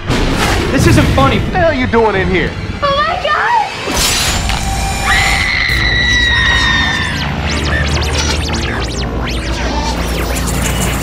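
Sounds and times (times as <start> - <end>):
long high shriek: 4.2 - 7.3
low droning music: 4.2 - 11.0.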